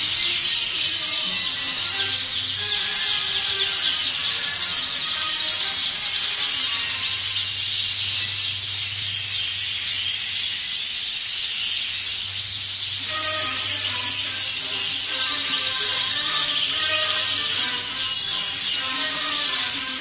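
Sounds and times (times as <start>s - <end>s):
canaries singing and chirping: 0.0s - 20.0s.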